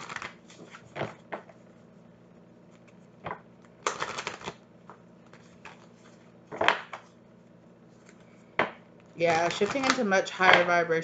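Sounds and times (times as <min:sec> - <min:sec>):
cards shuffling: 0:00.0 - 0:01.2, 0:03.8 - 0:07.1, 0:09.1 - 0:10.1
cards riffling: 0:03.8 - 0:04.6, 0:09.3 - 0:10.0.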